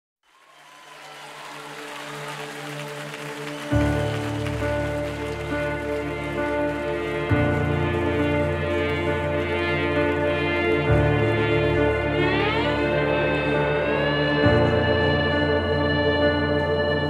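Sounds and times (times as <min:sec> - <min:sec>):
audience applause: 0:00.2 - 0:15.6
keyboard and band chord: 0:03.2 - 0:17.0.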